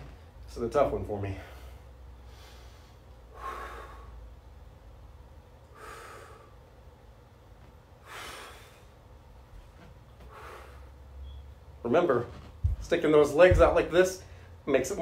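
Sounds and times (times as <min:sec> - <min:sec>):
man breathing hard: 0:01.3 - 0:04.4, 0:05.6 - 0:06.8, 0:08.0 - 0:09.1, 0:10.2 - 0:11.1.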